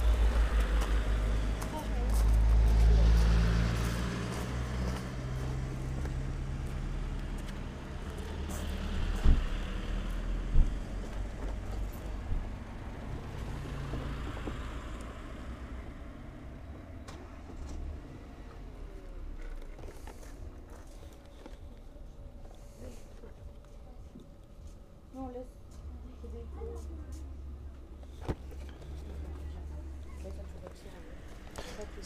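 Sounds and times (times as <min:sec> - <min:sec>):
car engine driving past: 0:00.0 - 0:20.3.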